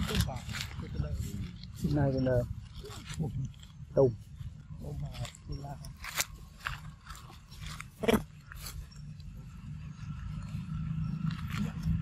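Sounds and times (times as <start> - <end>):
crackles on dry leaves: 0.0 - 12.0.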